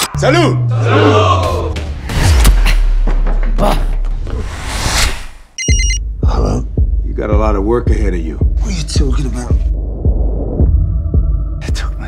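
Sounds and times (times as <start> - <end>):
telephone ringing with electronic trill: 5.6 - 6.0.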